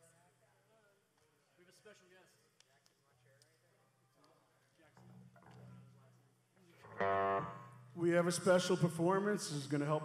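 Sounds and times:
electric guitar ringing: 6.9 - 8.0.

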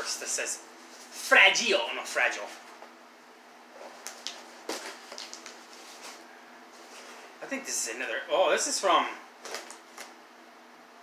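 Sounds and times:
packing tape peeling: 4.0 - 6.2.

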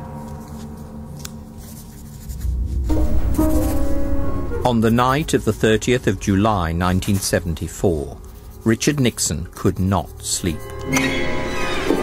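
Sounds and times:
low music: 0.0 - 11.5
pencil scratching on paper: 1.6 - 10.7.

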